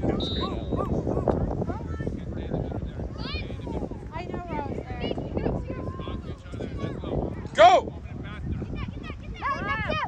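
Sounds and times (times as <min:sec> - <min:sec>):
spectators talking: 0:00.0 - 0:10.0.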